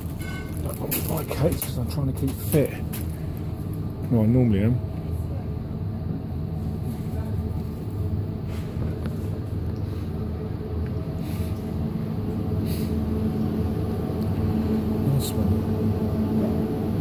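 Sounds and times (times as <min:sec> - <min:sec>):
low mechanical hum of refrigerators: 0:00.0 - 0:17.0.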